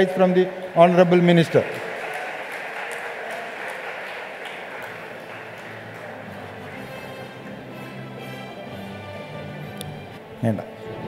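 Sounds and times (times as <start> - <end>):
audience applauding: 0.0 - 9.8.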